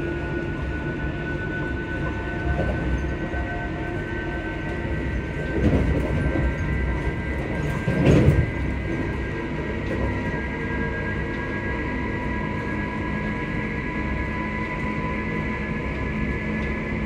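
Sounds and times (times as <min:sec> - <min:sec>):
high steady whines: 0:00.0 - 0:17.0
train carriage rumble: 0:00.0 - 0:17.0.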